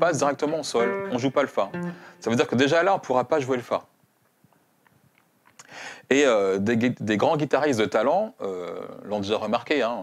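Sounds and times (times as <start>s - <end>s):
faint small clicks: 4.2s - 5.7s
short intake of breath: 5.6s - 6.0s.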